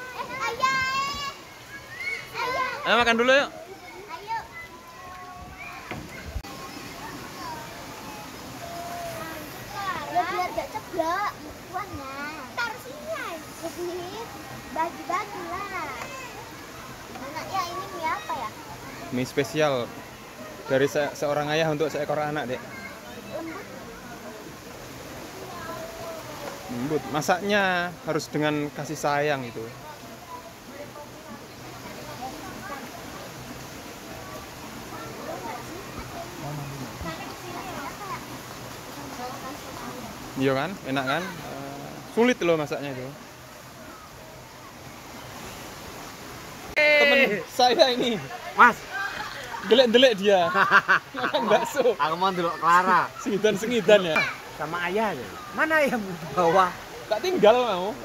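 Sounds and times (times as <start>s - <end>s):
distant voices at pool: 0.0s - 58.0s
people calling out: 46.8s - 47.5s.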